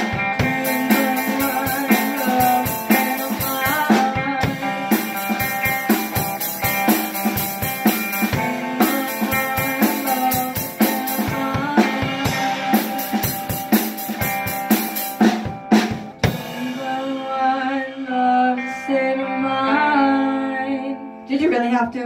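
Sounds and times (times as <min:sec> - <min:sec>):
drum kit beat: 0:00.0 - 0:17.5.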